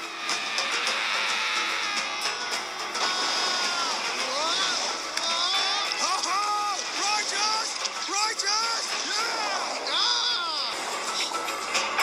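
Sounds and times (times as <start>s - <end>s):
film music: 0.0s - 12.0s
rushing water: 0.0s - 12.0s
cartoon voices yelling: 3.1s - 10.8s.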